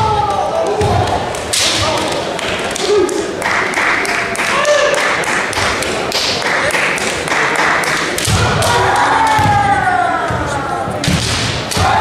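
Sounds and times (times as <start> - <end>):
bamboo swords clacking: 0.7 - 3.3
long drawn-out shout: 8.4 - 10.8.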